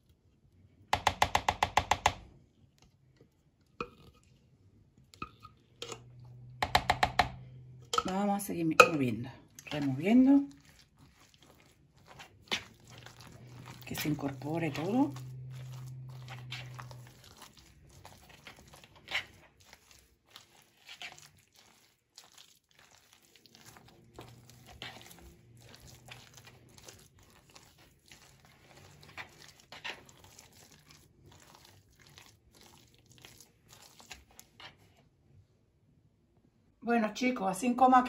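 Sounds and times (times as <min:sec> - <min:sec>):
spatula mixing and scraping: 0:00.0 - 0:35.2.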